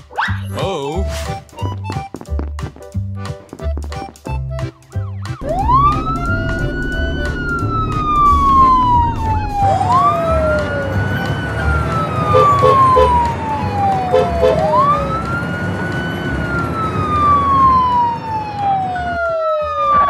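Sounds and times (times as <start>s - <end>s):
low background rumble: 5.4s - 13.0s
ambulance siren wailing: 5.4s - 20.0s.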